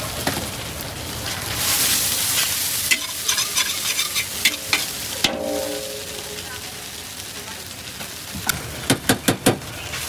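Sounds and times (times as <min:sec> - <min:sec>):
noodles sizzling in a wok: 0:00.0 - 0:10.0
spatula scraping wok: 0:01.5 - 0:06.3
metal clang: 0:02.9 - 0:06.3.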